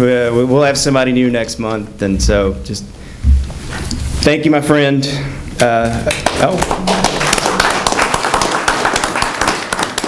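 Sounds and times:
small group applauding: 0:05.6 - 0:10.0.

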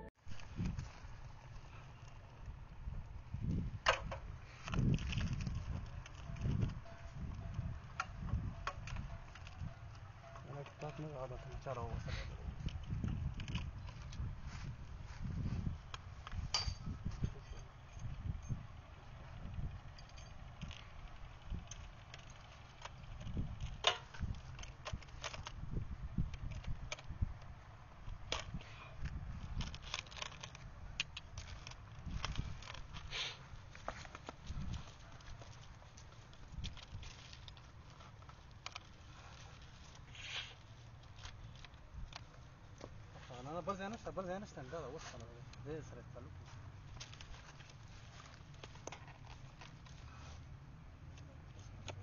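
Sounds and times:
small clicks and knocks: 0:19.9 - 0:25.6, 0:51.0 - 0:52.0.

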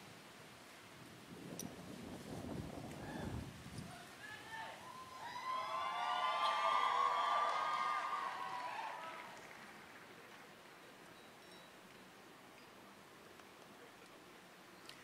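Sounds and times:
audience cheering: 0:04.2 - 0:10.1.

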